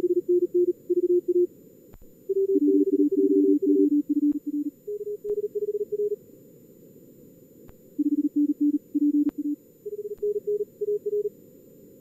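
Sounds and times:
morse code tone: 0.0s - 1.5s, 2.3s - 6.2s, 8.0s - 11.3s.

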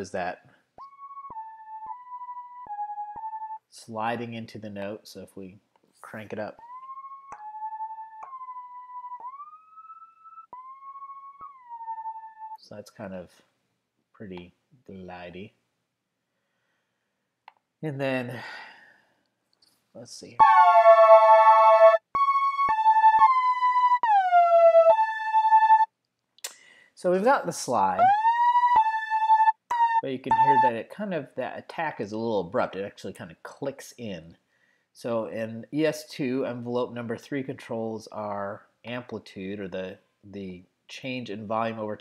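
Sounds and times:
synthesizer lead gliding notes: 0.8s - 3.7s, 6.6s - 12.6s, 20.4s - 25.9s, 27.8s - 30.8s
note attack clicks: 6.6s - 12.6s, 20.4s - 25.9s, 28.0s - 30.7s.

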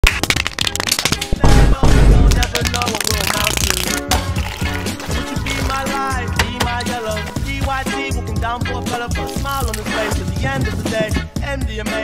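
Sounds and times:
music with heavy bass: 3.6s - 12.0s.

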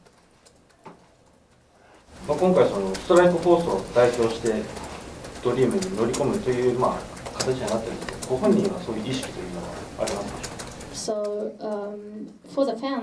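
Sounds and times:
man talking: 2.1s - 10.6s.

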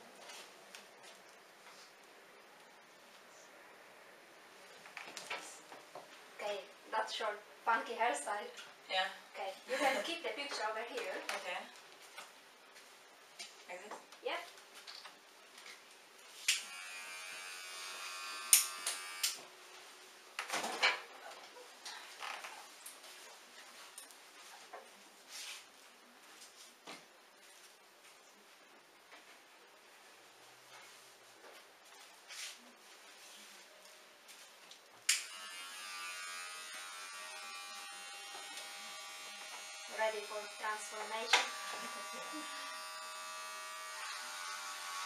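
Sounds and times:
hair clippers buzzing: 16.4s - 19.4s, 35.1s - 45.0s.

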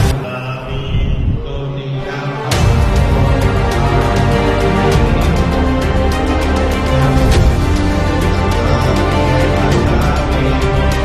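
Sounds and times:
monks chanting: 1.8s - 11.0s.

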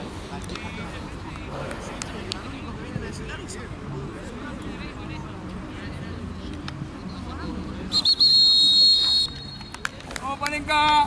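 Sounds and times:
referee's whistle: 7.9s - 9.7s.

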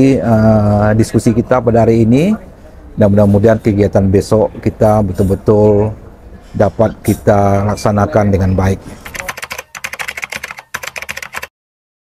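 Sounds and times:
computer keyboard typing: 9.0s - 11.5s.

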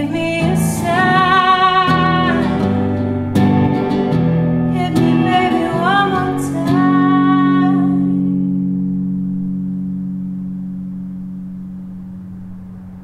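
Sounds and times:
person singing: 0.0s - 3.0s, 4.7s - 8.4s
guitar chord ringing: 0.0s - 13.0s.

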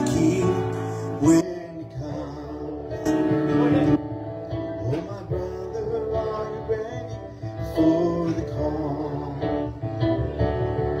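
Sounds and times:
electric keyboard sustained chords: 0.0s - 11.0s.

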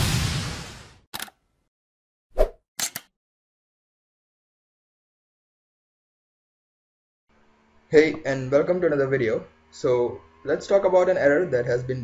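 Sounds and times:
click sound effects: 2.8s - 3.1s.

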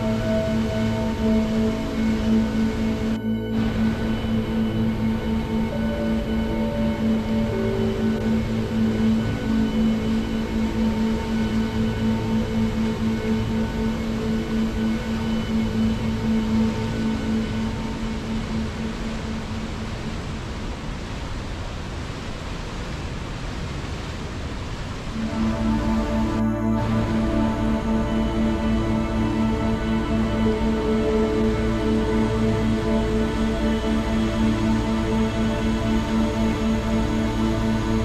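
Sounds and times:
slow ambient music: 0.0s - 21.4s, 25.1s - 38.0s.

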